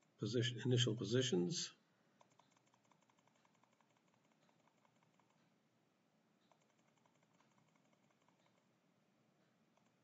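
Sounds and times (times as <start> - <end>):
rapid computer mouse clicks: 2.2 - 5.6, 6.4 - 8.8, 9.7 - 10.0.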